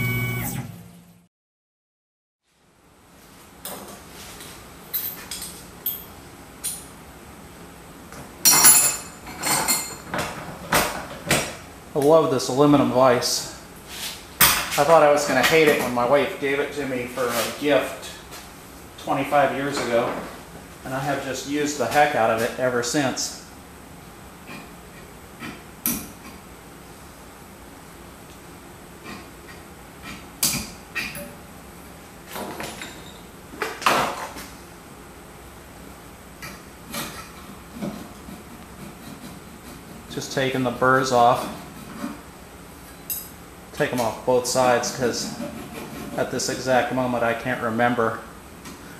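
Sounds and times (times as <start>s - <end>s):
file scraping metal: 36.9s - 40.1s, 44.9s - 46.5s.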